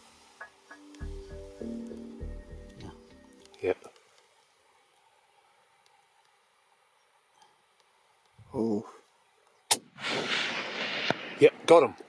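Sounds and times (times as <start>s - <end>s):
rifle shot with rolling echo: 9.7s - 11.8s.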